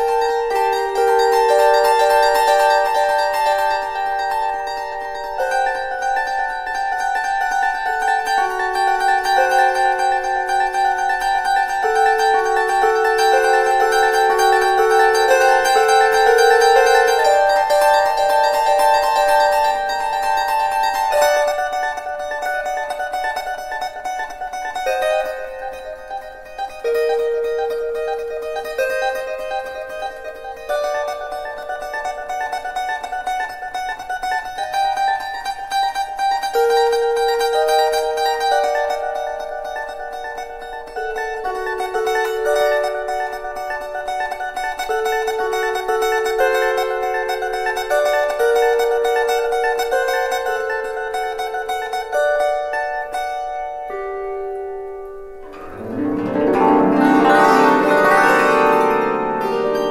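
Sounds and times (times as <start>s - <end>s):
plucked bandura melody: 0.0s - 59.9s.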